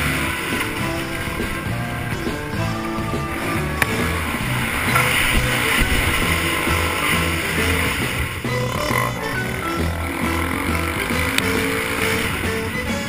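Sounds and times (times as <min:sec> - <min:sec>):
dirt bike engine running: 0:00.0 - 0:13.0
music track with stepping bass line: 0:00.0 - 0:13.0
wind noise: 0:00.0 - 0:13.0.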